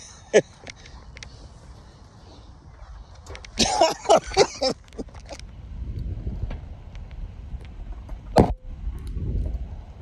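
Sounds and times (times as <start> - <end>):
wind rushing over microphone: 5.3 - 10.0.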